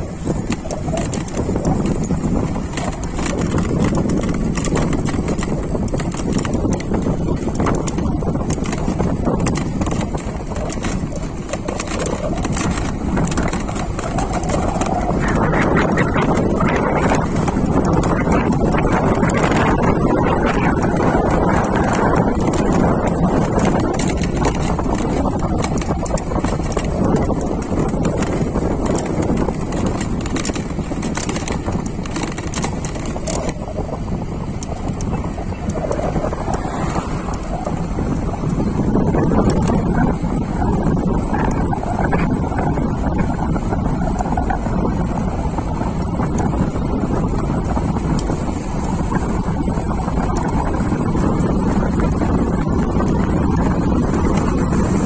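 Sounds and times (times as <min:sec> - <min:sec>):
light rattling clicks: 0:00.0 - 0:40.2
tyre and road noise: 0:00.0 - 0:55.0
wind rumbling on microphone: 0:00.0 - 0:55.0.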